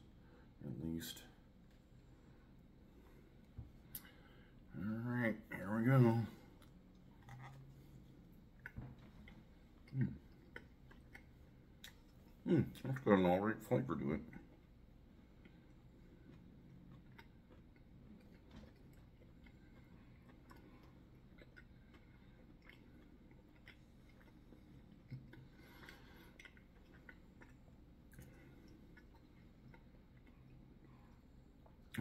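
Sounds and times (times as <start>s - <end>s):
person quietly chewing: 1.4s - 5.0s, 6.2s - 13.2s, 14.2s - 32.0s.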